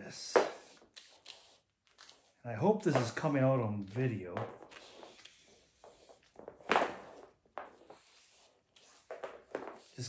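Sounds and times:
cord dragged over floor: 0:00.3 - 0:10.0.

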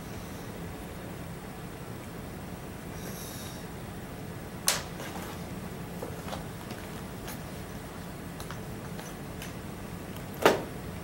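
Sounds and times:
steady room hum: 0:00.0 - 0:11.0.

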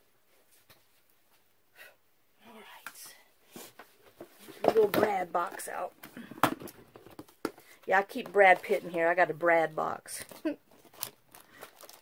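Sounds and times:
plastic box handled and opened: 0:03.6 - 0:09.3, 0:10.2 - 0:12.0.

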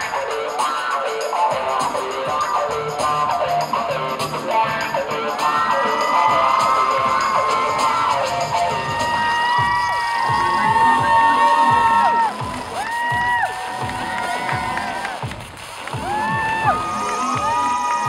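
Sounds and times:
audience screaming and cheering: 0:00.0 - 0:18.0
runway music: 0:00.0 - 0:18.0.

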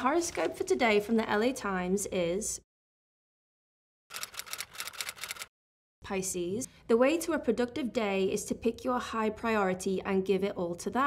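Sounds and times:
newspaper pages crackling: 0:00.0 - 0:01.3.

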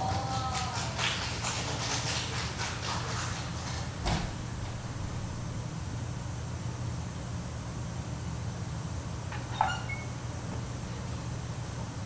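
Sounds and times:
low hum of a hall: 0:00.0 - 0:12.0.

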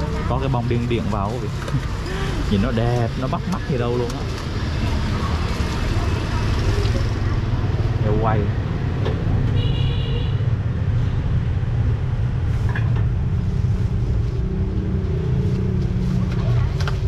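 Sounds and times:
street traffic rumble: 0:00.0 - 0:17.0.

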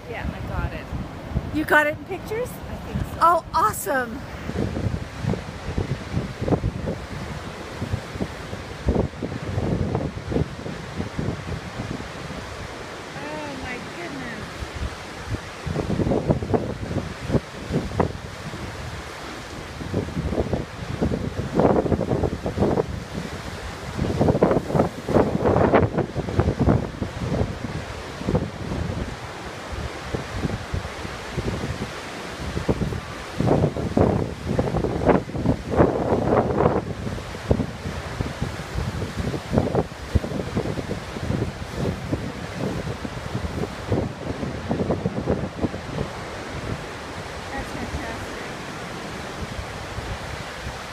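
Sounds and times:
surf breaking on rocks: 0:00.0 - 0:50.9
wind buffeting microphone: 0:00.0 - 0:50.9.

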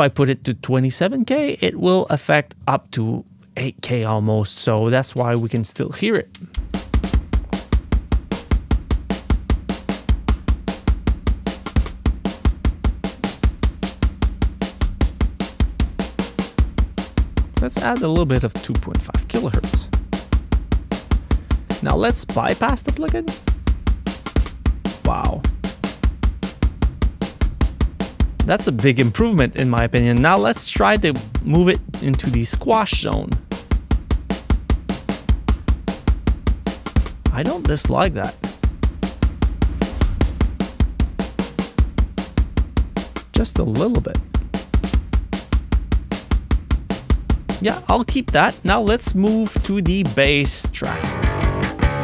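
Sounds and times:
fast drum and bass groove: 0:01.0 - 0:52.0.

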